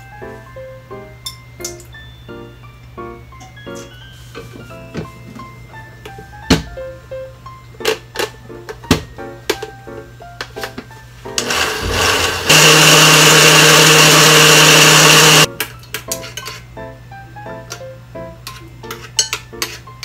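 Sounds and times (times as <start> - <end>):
soft piano music: 0.0 - 11.9, 15.5 - 20.0
electric blender motor: 11.4 - 15.5.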